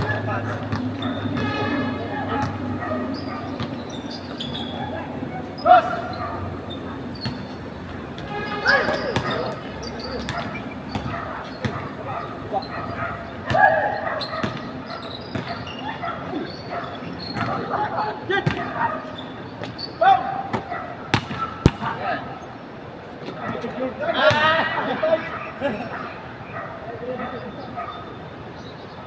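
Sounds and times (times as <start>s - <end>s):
basketball bouncing on court: 0.0s - 1.6s, 2.3s - 4.6s, 7.1s - 7.6s, 8.9s - 12.0s, 13.4s - 15.8s, 17.1s - 17.7s, 20.5s - 21.9s
players shouting: 0.0s - 22.5s, 23.4s - 27.5s.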